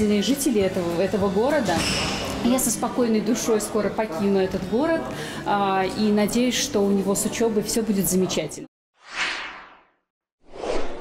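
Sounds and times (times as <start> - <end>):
whoosh sound effects: 9.0 - 9.9, 10.5 - 11.0.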